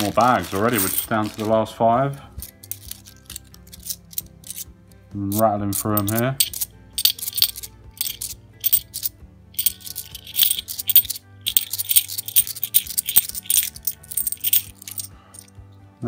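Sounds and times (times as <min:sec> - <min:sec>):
coins clinking: 0:00.0 - 0:01.6, 0:02.4 - 0:04.7, 0:05.3 - 0:15.5
faint background music: 0:00.0 - 0:16.0.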